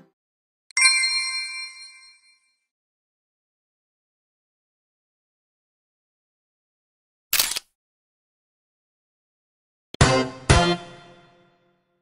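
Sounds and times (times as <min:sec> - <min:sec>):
bright chime ding: 0:00.7 - 0:02.4.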